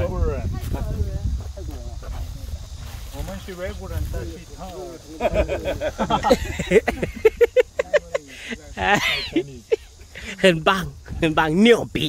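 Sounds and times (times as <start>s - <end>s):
wind rumble on microphone: 0.0s - 4.6s, 10.8s - 11.6s.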